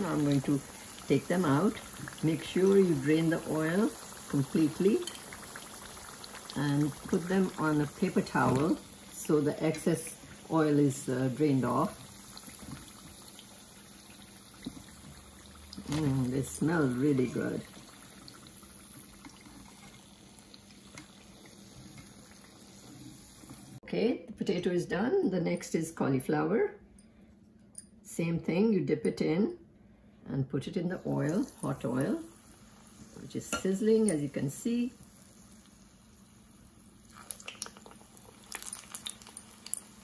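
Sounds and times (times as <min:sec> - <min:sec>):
fritters deep-frying in oil: 0:00.0 - 0:20.9, 0:34.3 - 0:40.0.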